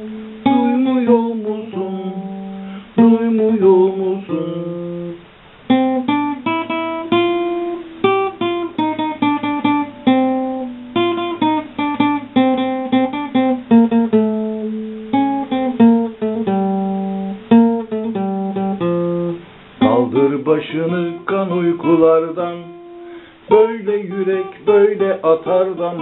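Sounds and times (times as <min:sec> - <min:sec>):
plucked string instrument: 0:00.0 - 0:26.0.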